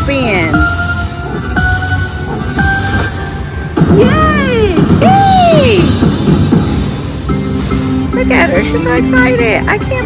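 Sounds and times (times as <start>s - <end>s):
slot machine jingle music: 0.0s - 4.3s, 6.6s - 10.0s
cartoon woman exclaiming: 3.9s - 6.0s.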